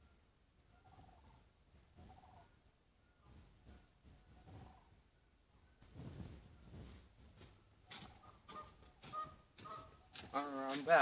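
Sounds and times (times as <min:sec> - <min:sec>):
birds honking: 0:08.0 - 0:10.6.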